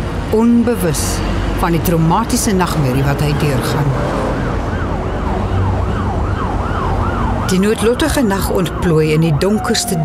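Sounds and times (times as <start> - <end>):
traffic rumble: 0.0 - 10.0
siren yelping: 4.3 - 10.0.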